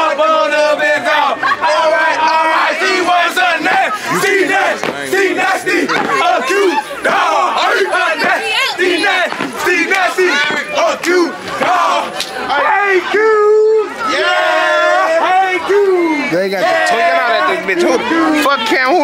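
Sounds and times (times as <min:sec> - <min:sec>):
crowd hollering and shouting: 0:00.0 - 0:19.0.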